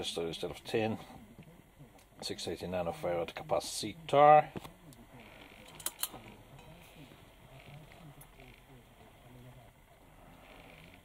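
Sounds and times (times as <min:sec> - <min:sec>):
faint low murmur: 0:00.0 - 0:11.0.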